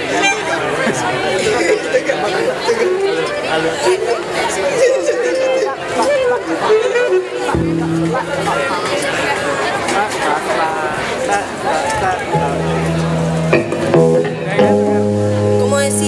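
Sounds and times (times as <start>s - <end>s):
audience and band chattering: 0.0s - 16.0s
scattered instrument sounds: 0.0s - 16.0s
steady held note: 2.8s - 9.6s.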